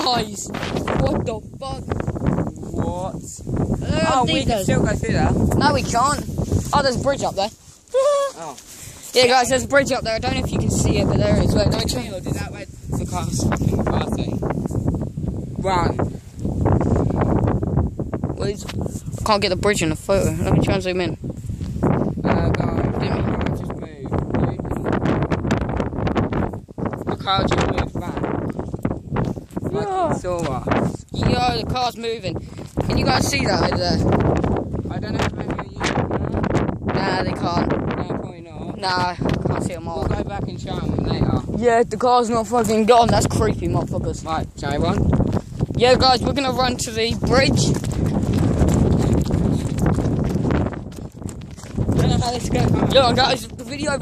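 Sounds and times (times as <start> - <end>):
wind buffeting microphone: 0.0 - 54.0
running footsteps: 42.0 - 54.0.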